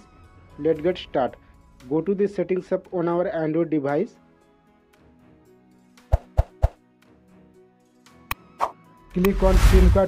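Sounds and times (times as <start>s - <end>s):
faint background music: 0.0s - 10.0s
pop sound effects: 6.1s - 6.8s.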